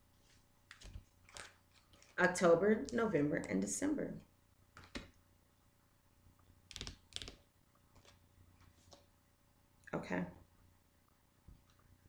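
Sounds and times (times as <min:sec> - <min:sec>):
cards clicking and rustling: 0:00.2 - 0:02.2, 0:06.7 - 0:09.1.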